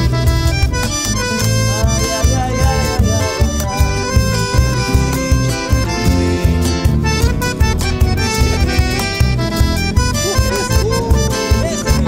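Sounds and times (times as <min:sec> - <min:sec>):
accordion melody: 0:00.0 - 0:12.0
pulsing bass accompaniment: 0:00.0 - 0:12.0.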